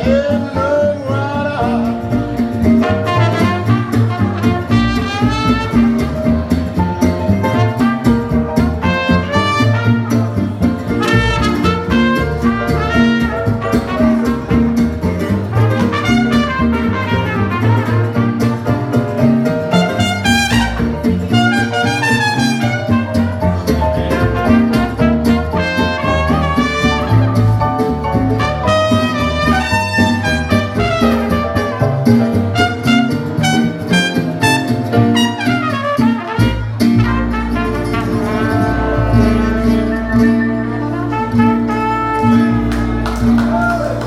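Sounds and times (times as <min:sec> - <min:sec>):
strummed acoustic guitar: 0:00.0 - 0:43.4
plucked double bass: 0:00.0 - 0:44.0
trumpet melody: 0:02.7 - 0:06.6, 0:07.2 - 0:43.9.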